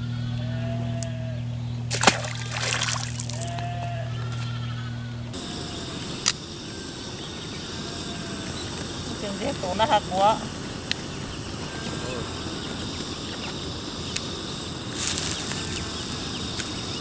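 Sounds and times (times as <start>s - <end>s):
steady low hum: 0.0s - 17.0s
splash into river water: 1.9s - 3.6s
water sloshing: 1.9s - 3.7s.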